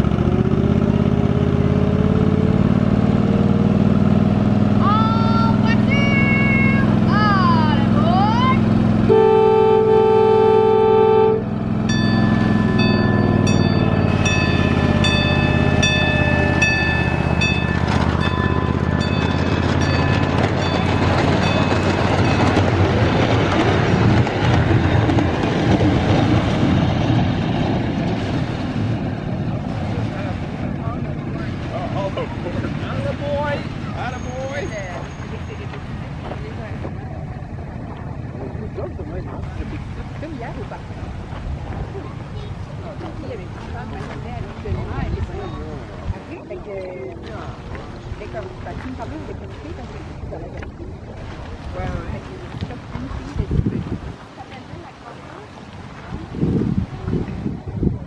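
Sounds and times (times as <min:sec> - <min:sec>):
train horn blast: 0:09.0 - 0:11.6
bell ringing: 0:11.9 - 0:22.8.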